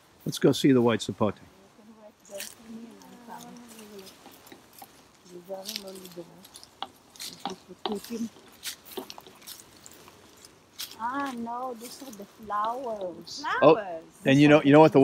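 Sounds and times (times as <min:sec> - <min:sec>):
brushing through leafy branches: 0:02.2 - 0:15.0
footsteps on leaf litter: 0:02.3 - 0:13.6.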